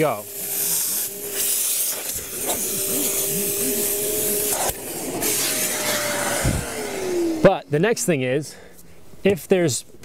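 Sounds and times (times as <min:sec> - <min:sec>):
shop vacuum whining: 0:00.0 - 0:08.1.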